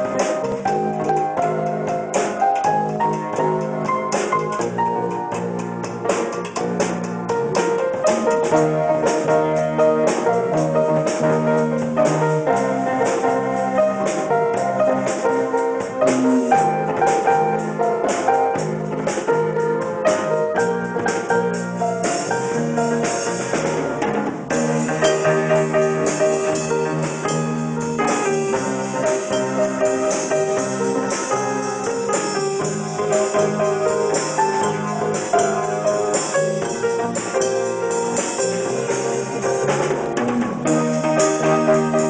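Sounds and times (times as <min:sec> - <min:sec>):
drum kit: 0:00.0 - 0:42.0
grand piano playing chords: 0:00.0 - 0:42.0.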